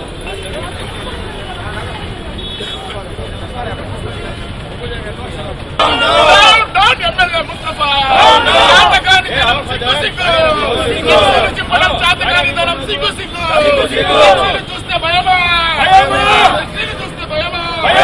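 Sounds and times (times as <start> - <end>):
crowd murmur: 0.0 - 6.7, 7.5 - 15.0, 15.7 - 18.0
traffic: 0.0 - 18.0
men shouting slogans: 5.8 - 18.0.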